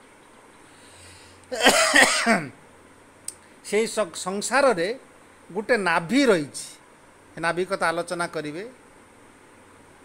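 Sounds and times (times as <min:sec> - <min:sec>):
man coughing and clearing throat: 0:01.5 - 0:02.6.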